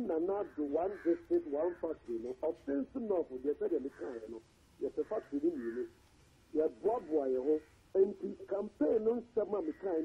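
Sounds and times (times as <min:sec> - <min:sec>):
man talking over telephone: 0:00.0 - 0:10.0.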